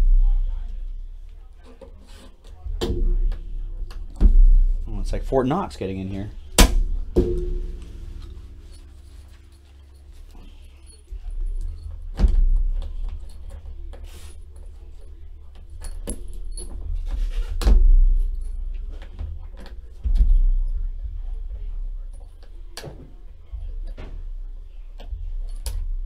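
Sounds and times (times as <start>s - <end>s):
keys jangling: 7.8s - 17.6s.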